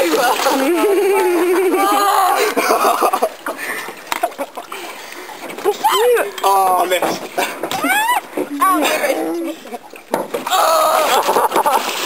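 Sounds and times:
canoe paddle splashing water: 0:00.0 - 0:12.0
high shrieks of laughter: 0:07.8 - 0:08.9.

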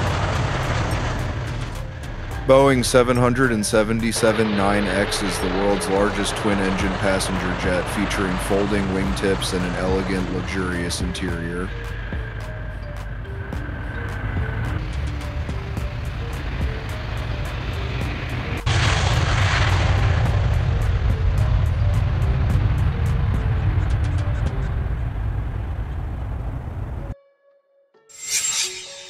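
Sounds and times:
jet engines roaring: 0:00.0 - 0:27.1
background music with steady beat: 0:00.1 - 0:24.9.

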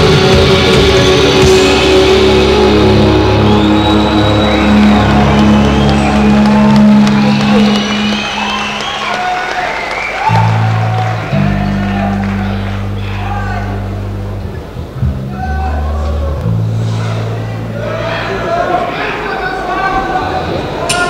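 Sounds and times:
electric guitar drones ringing out: 0:00.0 - 0:09.6, 0:10.2 - 0:19.4
crowd cheering: 0:00.0 - 0:21.0.

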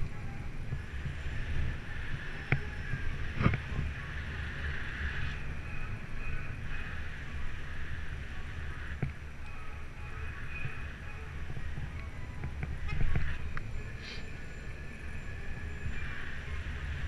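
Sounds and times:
low rumble of bicycle on road: 0:00.0 - 0:17.0
wind buffeting microphone: 0:00.0 - 0:17.0.

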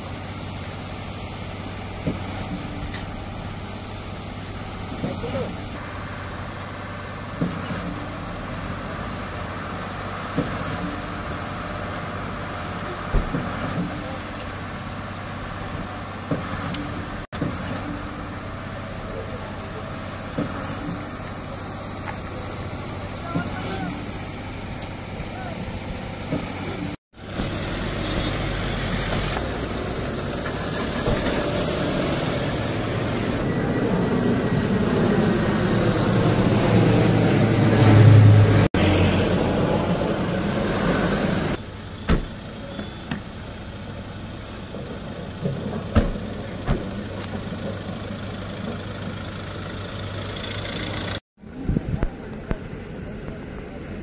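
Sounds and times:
vehicles driving past: 0:00.0 - 0:54.0
indistinct voices: 0:17.8 - 0:27.0.

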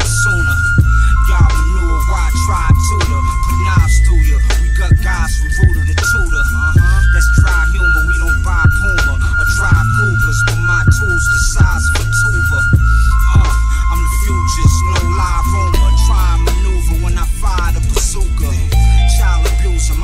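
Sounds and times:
hip-hop beat: 0:00.0 - 0:20.0
sustained high melodic note: 0:00.1 - 0:17.6, 0:18.7 - 0:20.0.

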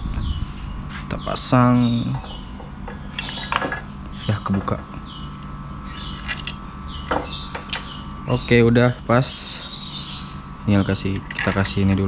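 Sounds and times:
low steady hum: 0:00.0 - 0:12.0
metal parts clicking and scraping: 0:05.4 - 0:06.6, 0:11.1 - 0:11.8.

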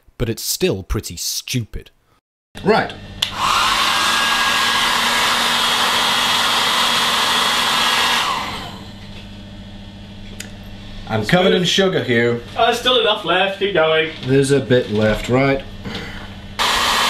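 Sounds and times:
hair dryer blowing: 0:03.2 - 0:09.2, 0:16.6 - 0:17.0.

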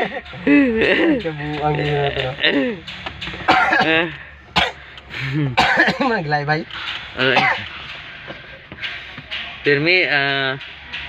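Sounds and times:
person coughing: 0:03.5 - 0:04.0, 0:04.6 - 0:06.1, 0:07.3 - 0:07.6.

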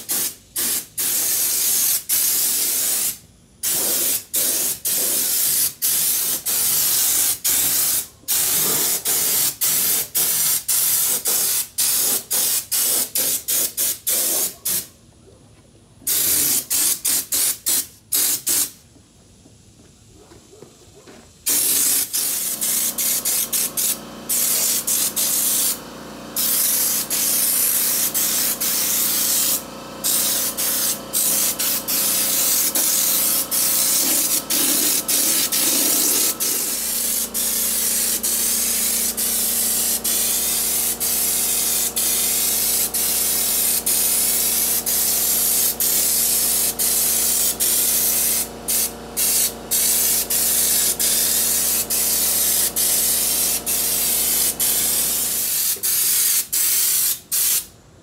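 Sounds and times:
spray gun hissing: 0:00.0 - 0:14.8, 0:16.1 - 0:18.8, 0:21.5 - 0:57.7.

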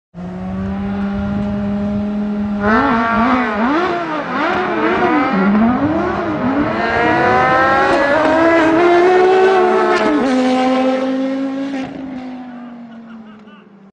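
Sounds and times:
sports car engines at full throttle: 0:00.1 - 0:13.6.

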